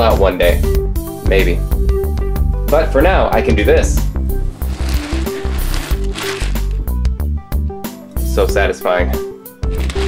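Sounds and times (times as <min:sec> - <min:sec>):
background music: 0:00.0 - 0:10.0
plastic beads rustling and clattering: 0:04.5 - 0:06.9, 0:09.7 - 0:10.0.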